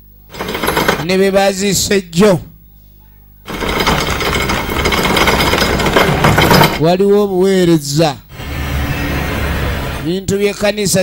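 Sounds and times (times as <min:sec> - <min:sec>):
loud rapid rattling clatter: 0:00.3 - 0:01.2, 0:03.5 - 0:06.9.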